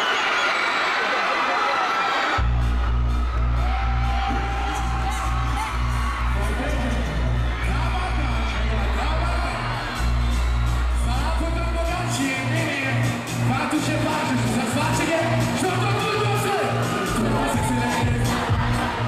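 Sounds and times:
loud dancehall music: 0:02.1 - 0:19.0.

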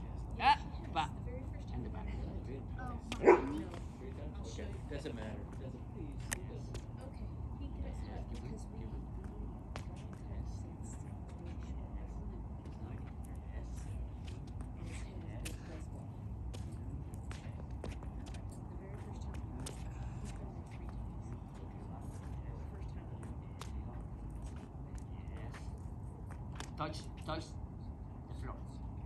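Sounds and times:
steady low rumble: 0:00.0 - 0:29.0.

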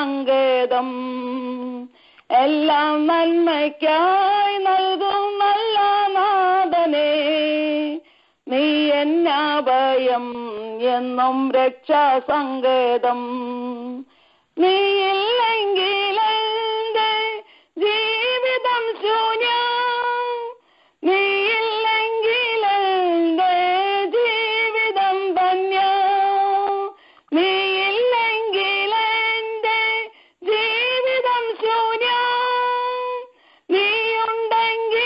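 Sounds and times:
woman singing unaccompanied: 0:00.0 - 0:35.0.

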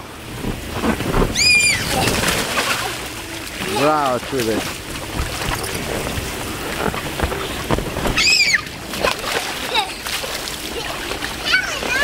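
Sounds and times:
water splashing and sloshing: 0:00.0 - 0:12.0
child squealing: 0:01.3 - 0:02.2, 0:08.2 - 0:08.7.

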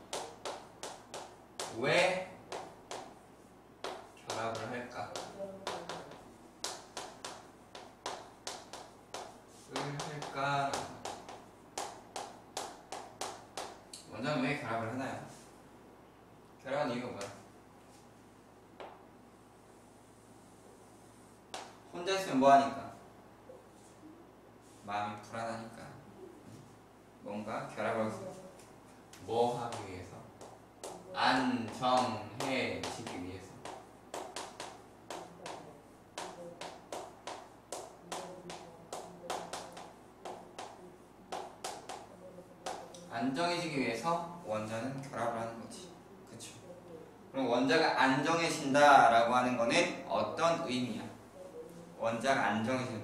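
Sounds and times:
chalk strokes on a chalkboard: 0:03.8 - 0:13.8, 0:29.6 - 0:42.9.

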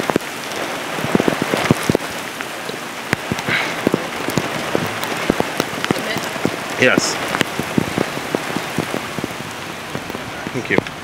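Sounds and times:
rain hissing on car: 0:00.0 - 0:11.0
raindrops ticking on roof and glass: 0:00.0 - 0:11.0.

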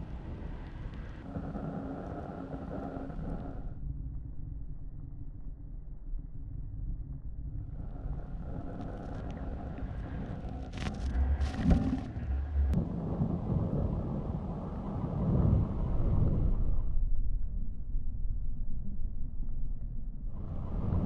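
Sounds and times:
wind rushing over microphone: 0:07.8 - 0:17.2, 0:20.3 - 0:21.0.

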